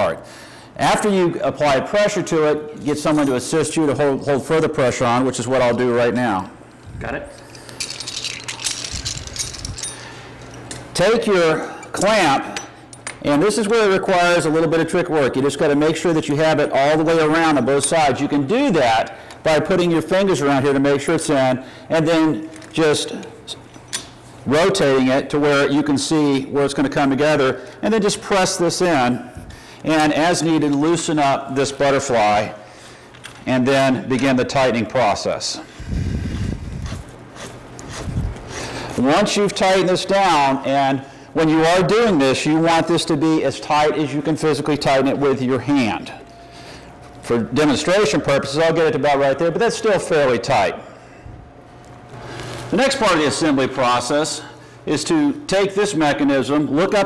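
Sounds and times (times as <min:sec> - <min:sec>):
low rumbling handling noise: 0:06.8 - 0:11.0
metal fittings clinking: 0:07.3 - 0:11.0.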